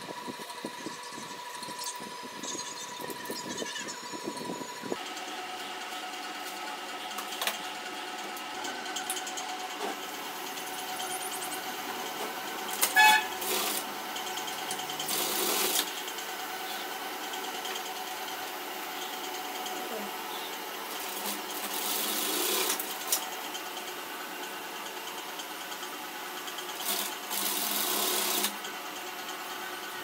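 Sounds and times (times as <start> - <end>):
sewing machine motor hum: 0.0 - 30.0
short honk-like tone: 12.9 - 13.3.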